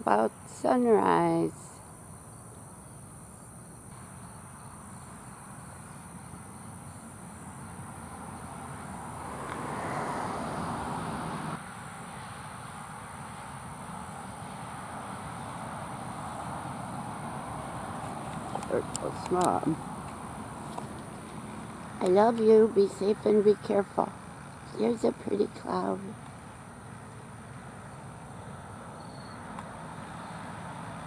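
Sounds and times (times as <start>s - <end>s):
distant road traffic rumble: 0.0s - 31.0s
high-pitched insect chorus: 0.0s - 31.0s.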